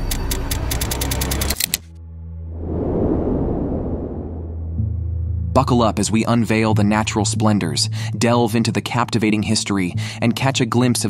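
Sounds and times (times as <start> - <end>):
low bass drone: 2.0 - 6.9.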